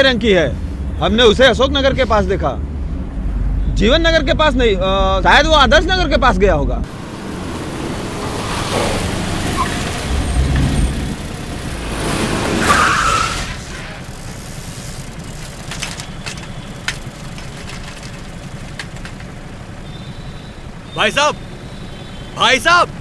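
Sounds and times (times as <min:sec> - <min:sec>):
street rumble: 0:00.0 - 0:23.0
tyres skidding: 0:00.0 - 0:23.0
car driving up: 0:00.6 - 0:23.0.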